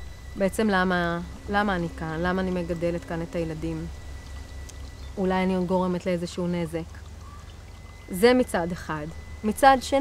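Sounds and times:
steady low hum: 0.0 - 10.0
woman speaking: 0.4 - 4.0, 5.2 - 7.0, 8.1 - 10.0.

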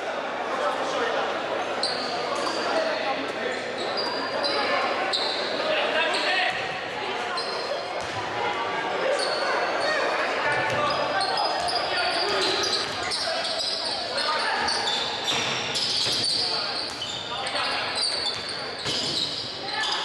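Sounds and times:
sneakers squeaking: 1.6 - 2.9, 3.5 - 8.3, 9.0 - 20.0.

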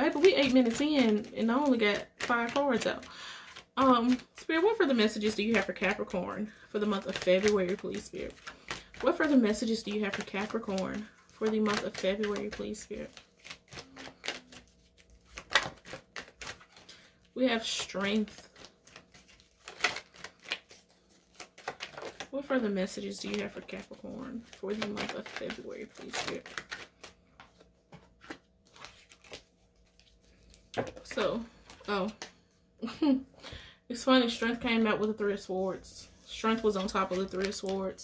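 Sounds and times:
cards being shuffled: 0.0 - 4.3, 6.8 - 32.5, 36.2 - 38.0.

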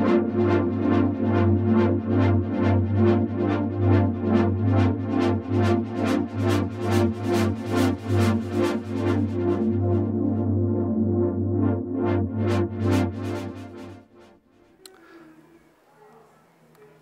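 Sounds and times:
pulsing synthesizer pad chord: 0.0 - 14.7.

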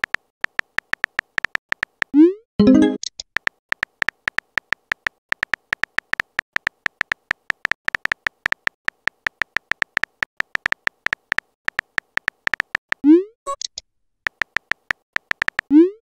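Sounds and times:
keystroke clicks with high beeps: 2.6 - 3.1, 13.5 - 15.9.

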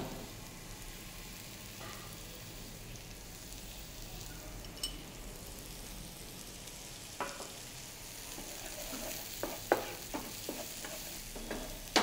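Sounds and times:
vegetables sizzling in frying pan: 0.0 - 12.0.

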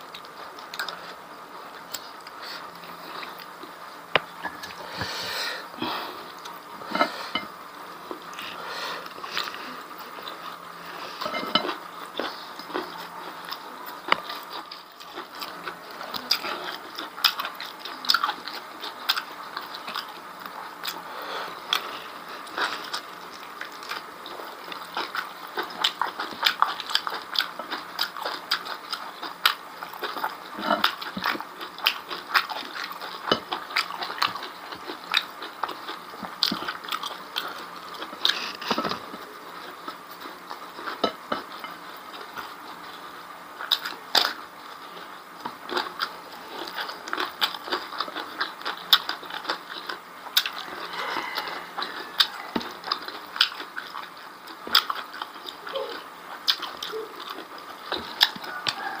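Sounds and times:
person chewing and lip-smacking: 0.1 - 1.2, 11.2 - 43.0, 43.6 - 59.0.

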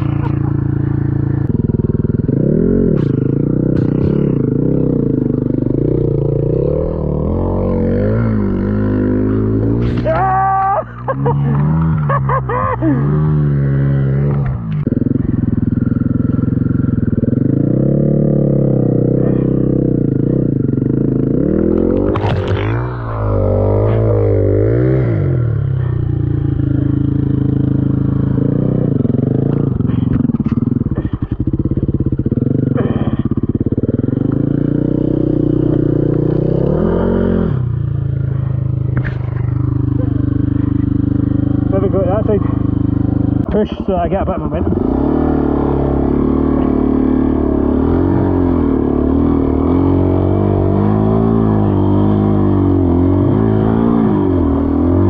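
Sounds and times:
dirt bike engine revving: 0.0 - 55.0.

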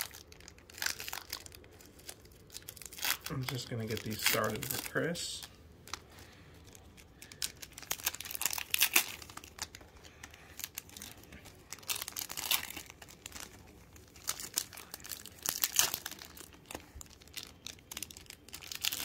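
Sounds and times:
foil wrappers crinkling: 0.0 - 19.0.

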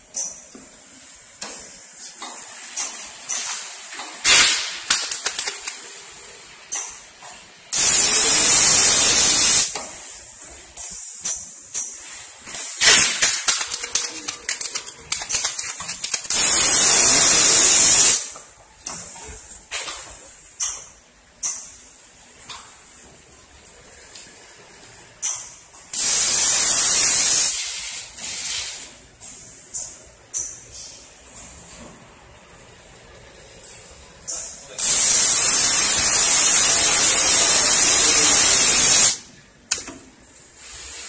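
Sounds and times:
compressed air hissing: 7.7 - 10.2, 10.8 - 13.4, 15.8 - 18.3, 26.0 - 29.4, 34.8 - 39.2, 40.6 - 41.0.

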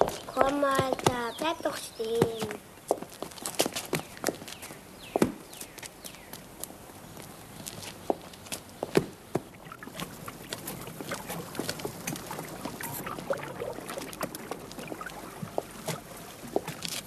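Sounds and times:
footsteps on stone paving: 0.0 - 9.6, 15.4 - 17.0.

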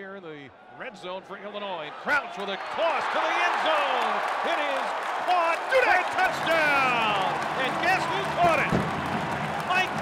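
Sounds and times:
crowd noise: 0.5 - 10.0
announcer shouting excitedly: 2.8 - 8.7.

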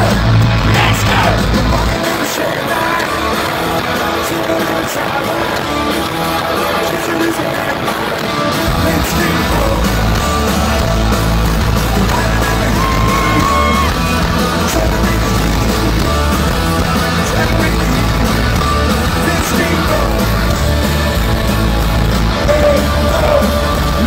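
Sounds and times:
deep bass: 0.0 - 2.0, 8.6 - 24.0
electric guitar: 0.0 - 24.0
live rock band: 0.0 - 24.0.

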